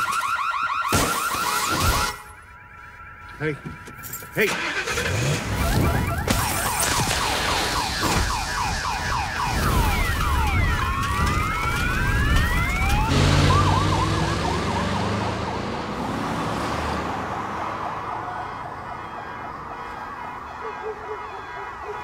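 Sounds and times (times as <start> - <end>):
fast warbling siren: 0.0 - 15.7, 17.1 - 22.0
police sirens wailing: 0.0 - 22.0.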